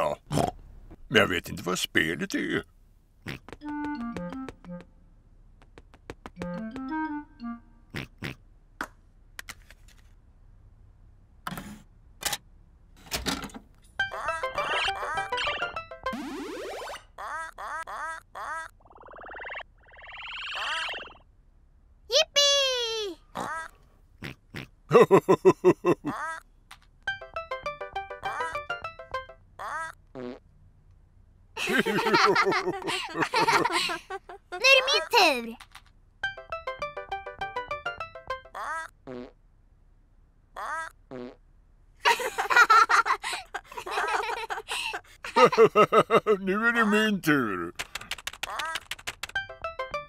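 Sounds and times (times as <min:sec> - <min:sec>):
children laughing loudly: 0:31.6 - 0:35.0, 0:42.1 - 0:46.4.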